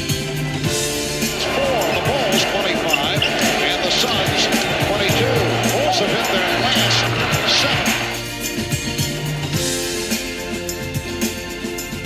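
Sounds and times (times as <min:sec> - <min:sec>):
background music: 0:00.0 - 0:12.0
arena crowd noise: 0:01.0 - 0:08.4
sneakers squeaking: 0:01.4 - 0:05.8.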